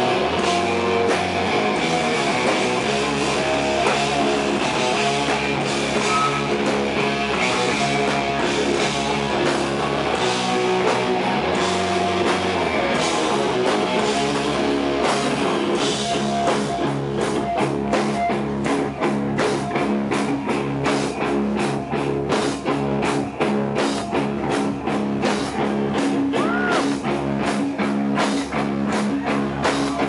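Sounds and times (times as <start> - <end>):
bass guitar: 0.0 - 30.0
electric guitar: 0.0 - 30.0
steady drum beat: 0.0 - 30.0.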